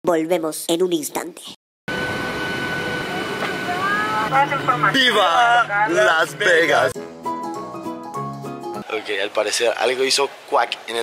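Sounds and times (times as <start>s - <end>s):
jet engine whine: 1.9s - 7.0s.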